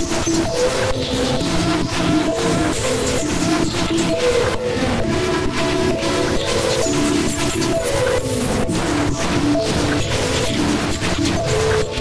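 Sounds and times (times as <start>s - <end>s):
harsh electronic synth music: 0.0s - 12.0s.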